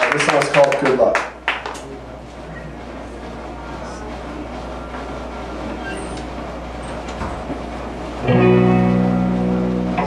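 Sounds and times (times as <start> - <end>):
amplifier hum and hiss: 0.0 - 10.0.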